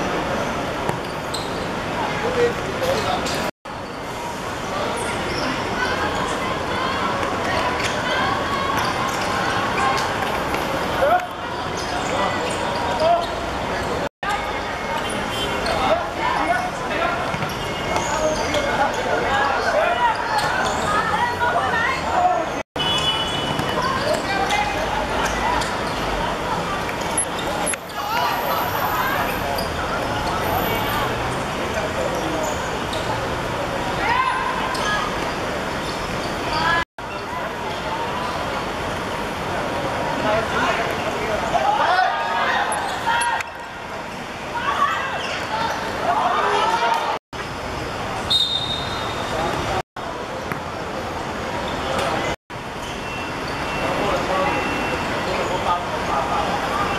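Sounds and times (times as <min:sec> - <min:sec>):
people shouting: 0:34.0 - 0:35.1.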